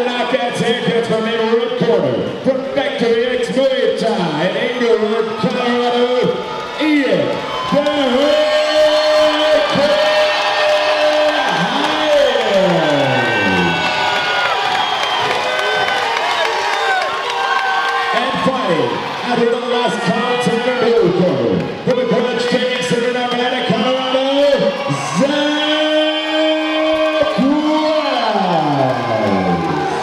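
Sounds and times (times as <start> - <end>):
crowd cheering and whooping: 4.5 - 30.0
announcer's drawn-out voice: 12.6 - 14.0.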